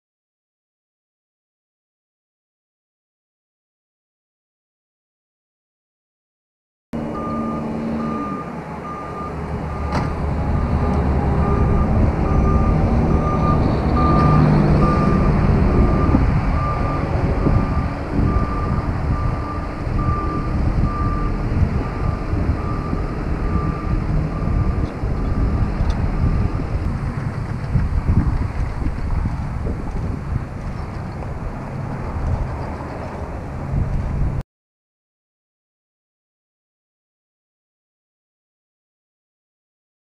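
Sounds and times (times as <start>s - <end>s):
backup alarm beeping: 7.0s - 26.7s
low engine rumble: 7.0s - 34.4s.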